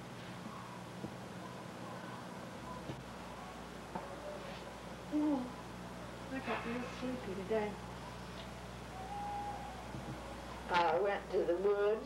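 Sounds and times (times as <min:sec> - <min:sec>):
steady low hum and hiss: 0:00.0 - 0:12.0.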